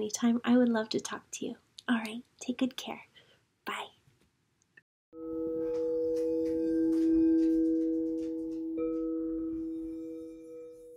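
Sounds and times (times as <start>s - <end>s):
singing bowl ringing: 5.2s - 10.9s.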